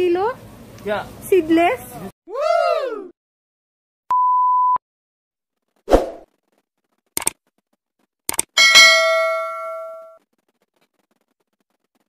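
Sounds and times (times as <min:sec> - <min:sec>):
bell ding: 0:08.6 - 0:10.2.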